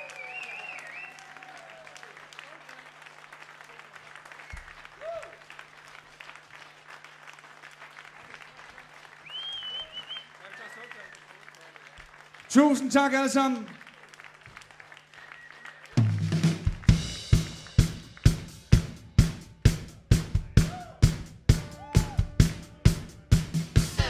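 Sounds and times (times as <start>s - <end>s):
whistles: 0.0s - 1.4s, 4.3s - 5.3s, 9.2s - 11.4s, 15.1s - 16.0s
audience applauding and cheering: 0.0s - 24.0s.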